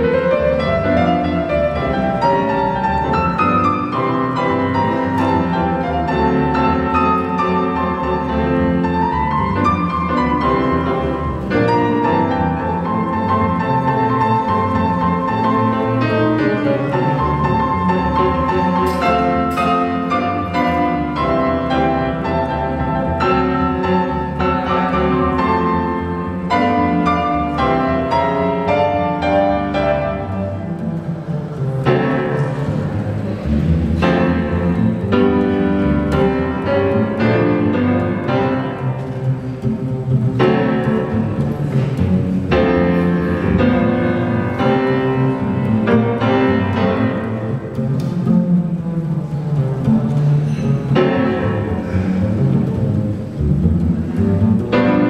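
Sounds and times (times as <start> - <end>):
jazz piano: 0.0 - 55.0
plucked double bass: 0.0 - 55.0.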